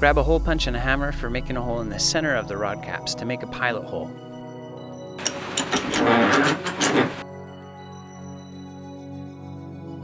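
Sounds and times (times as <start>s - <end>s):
background music: 0.0s - 10.0s
metal rattling and clanking: 5.2s - 7.2s.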